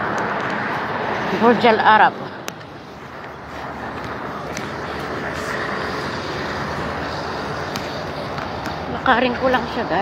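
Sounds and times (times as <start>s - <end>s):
motor vehicle passing: 0.0s - 10.0s.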